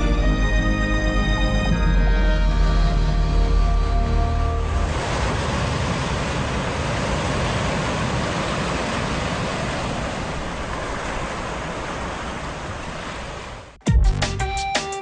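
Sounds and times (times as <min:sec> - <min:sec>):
surf-like rushing sound effect: 0:04.6 - 0:13.8.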